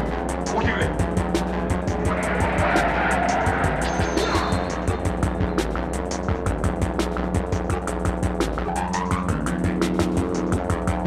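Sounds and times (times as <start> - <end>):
noisy swell: 1.7 - 6.0.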